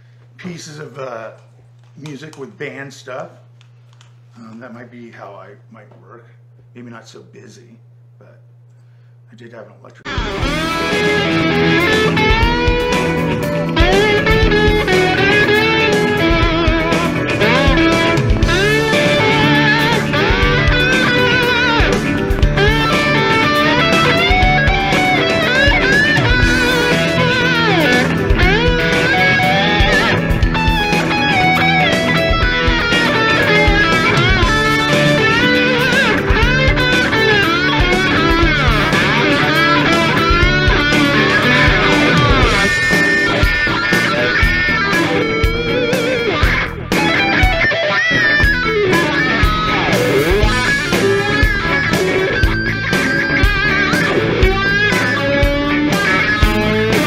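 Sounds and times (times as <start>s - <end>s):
steady low bass notes: 10.0s - 57.0s
electric guitar lead with bends: 10.1s - 57.0s.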